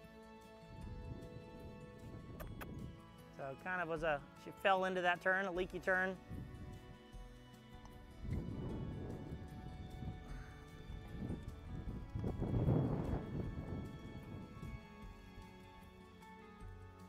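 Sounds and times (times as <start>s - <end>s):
background music: 0.0s - 17.0s
horse hooves in soft sand: 0.7s - 17.0s.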